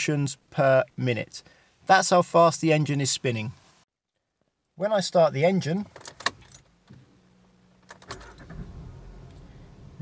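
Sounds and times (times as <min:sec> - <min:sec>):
car engine starting and idling: 0:06.0 - 0:10.0.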